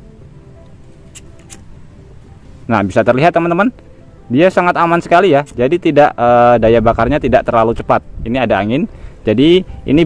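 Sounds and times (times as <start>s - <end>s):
background music: 0.0s - 10.0s
lighter clicks: 1.1s - 1.7s.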